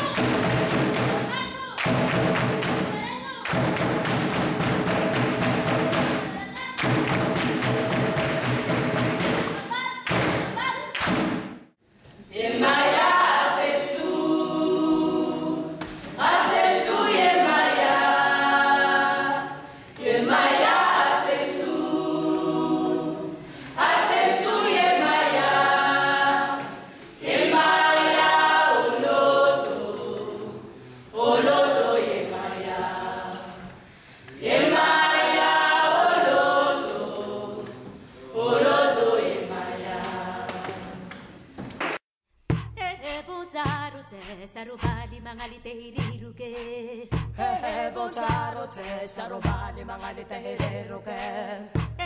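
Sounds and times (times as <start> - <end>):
group singing a cappella: 12.2 - 41.6, 46.5 - 51.9.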